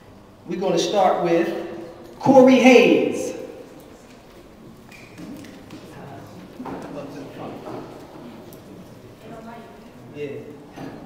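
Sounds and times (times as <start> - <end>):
man speaking: 0.5 - 3.6.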